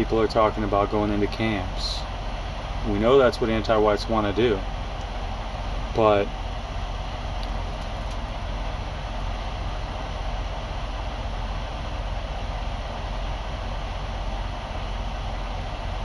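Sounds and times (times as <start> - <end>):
vehicle engine idling: 0.0 - 16.0
ventilation fan hissing: 0.0 - 16.0.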